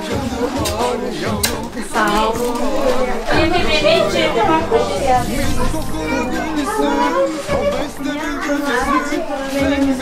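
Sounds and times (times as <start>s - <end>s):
background music: 0.0s - 10.0s
people talking: 0.2s - 10.0s
child talking: 3.3s - 9.5s.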